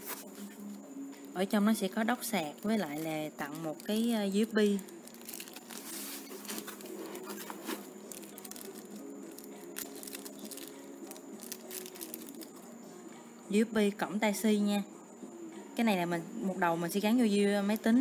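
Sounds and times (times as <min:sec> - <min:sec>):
plastic packet crinkling: 0:02.5 - 0:12.6.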